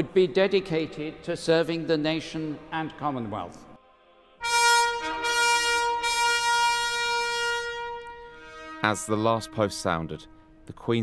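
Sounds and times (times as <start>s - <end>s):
fanfare trumpets: 4.4s - 10.7s.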